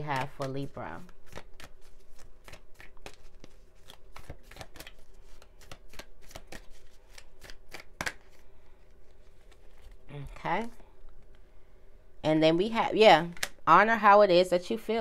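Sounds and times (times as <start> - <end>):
cards being shuffled: 0.0 - 11.4.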